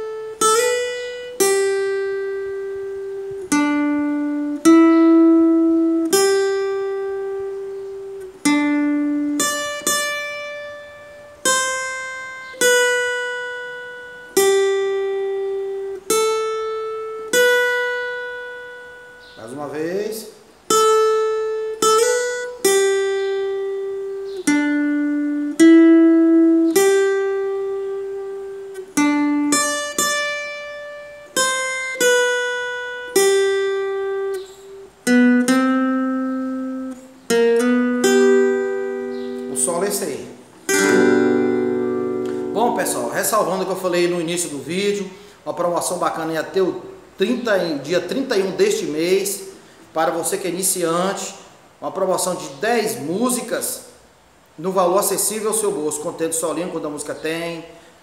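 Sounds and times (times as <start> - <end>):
acoustic guitar notes plucked slowly: 0.0 - 19.4, 20.4 - 45.5.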